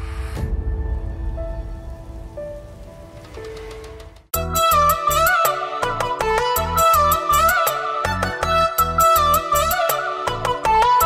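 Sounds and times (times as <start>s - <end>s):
low rumble: 0.0s - 4.3s
faint rain-like crackling: 0.6s - 4.4s.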